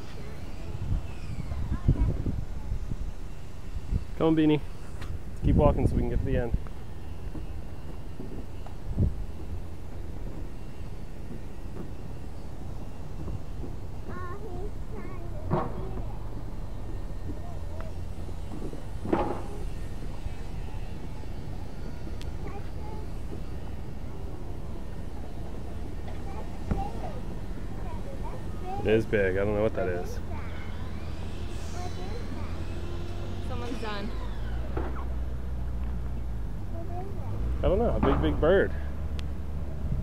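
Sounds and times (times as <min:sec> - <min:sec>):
low outdoor rumble: 0:00.0 - 0:40.0.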